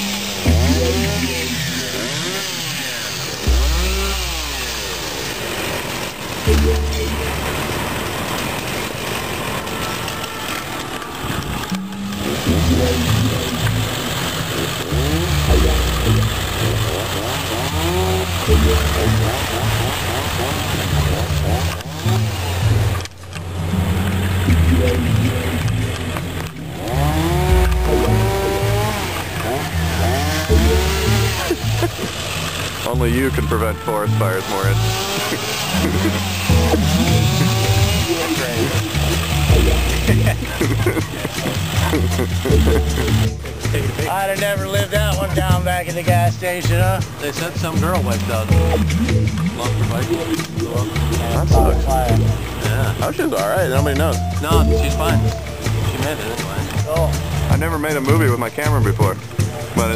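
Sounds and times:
chainsaws revving: 0:00.0 - 0:59.9
low rumble: 0:03.3 - 0:09.0, 0:11.2 - 0:32.1.

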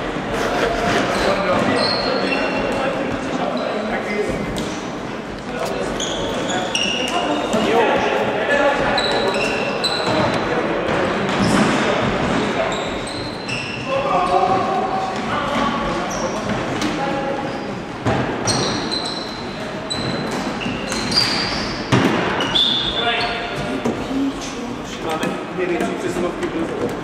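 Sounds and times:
shoes squeaking on wooden floor: 0:01.2 - 0:03.8, 0:05.4 - 0:10.4, 0:12.4 - 0:15.2, 0:18.4 - 0:27.0.

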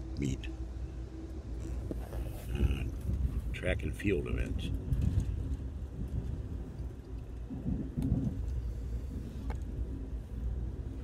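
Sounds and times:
train rumble inside carriage: 0:00.0 - 0:11.0.

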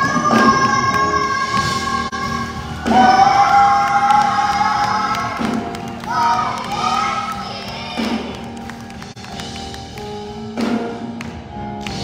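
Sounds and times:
children singing into microphones: 0:00.0 - 0:08.3.

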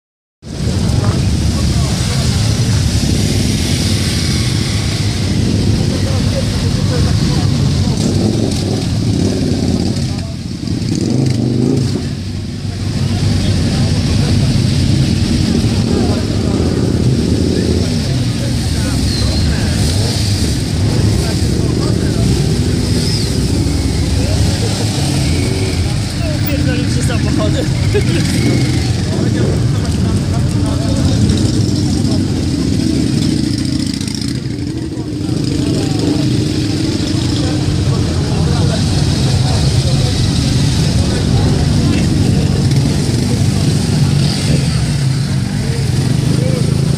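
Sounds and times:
crowd talking: 0:00.4 - 0:46.9
motorcycle engines running: 0:00.4 - 0:46.9.

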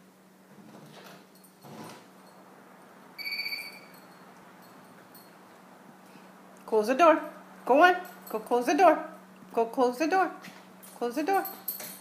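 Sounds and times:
electronic beep: 0:03.2 - 0:03.9.

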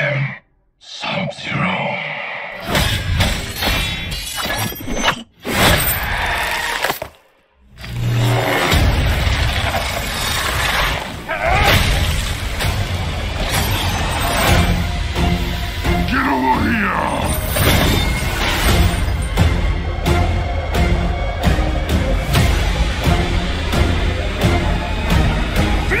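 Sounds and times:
film trailer music: 0:00.0 - 0:26.0.

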